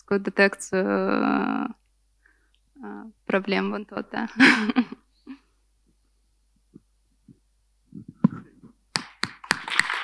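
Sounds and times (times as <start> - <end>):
audience applause: 9.4 - 10.0.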